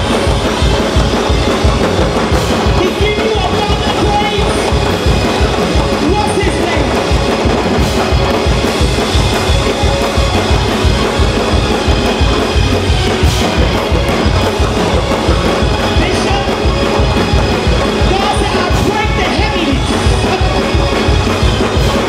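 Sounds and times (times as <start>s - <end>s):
band playing fast praise music: 0.0s - 22.0s.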